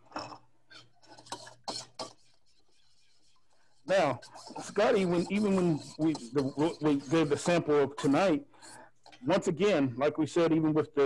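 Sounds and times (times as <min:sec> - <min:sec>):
utensil scraping a mixing bowl: 0:01.0 - 0:09.3.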